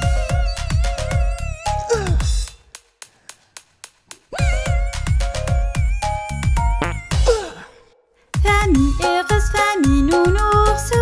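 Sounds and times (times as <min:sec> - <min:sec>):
children's electronic music: 0:00.0 - 0:02.7, 0:04.1 - 0:07.5, 0:08.4 - 0:11.0.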